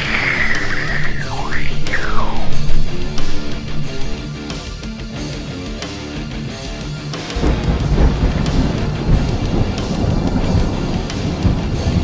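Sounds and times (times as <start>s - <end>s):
rolling thunder with crackling: 0.0s - 4.3s, 7.4s - 12.0s
background music: 0.0s - 12.0s.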